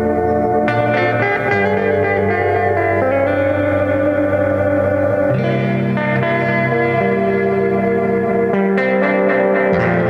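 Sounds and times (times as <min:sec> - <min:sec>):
electric guitar with effects: 0:00.0 - 0:10.0.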